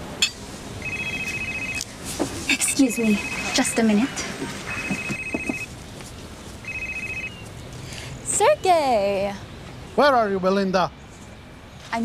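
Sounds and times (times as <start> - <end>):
mobile phone ringing: 0.8 - 1.8, 2.6 - 5.7, 6.6 - 7.4.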